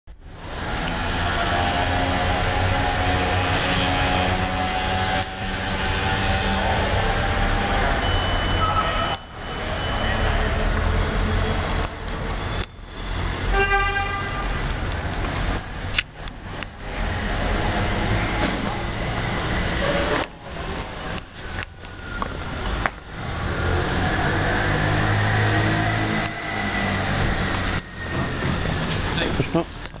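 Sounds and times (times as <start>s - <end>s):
rumble of passing vehicles: 0.1s - 30.0s
car horn toot: 13.5s - 14.6s.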